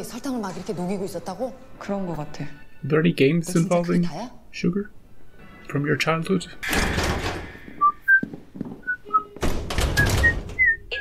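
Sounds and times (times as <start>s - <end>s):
footsteps on hard floor: 7.7s - 9.0s.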